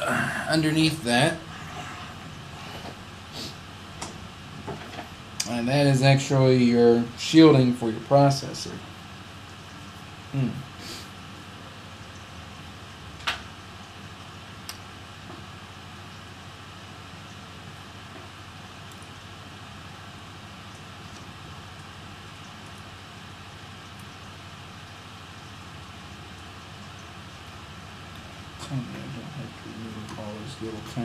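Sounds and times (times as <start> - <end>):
room hiss: 0.0 - 31.0.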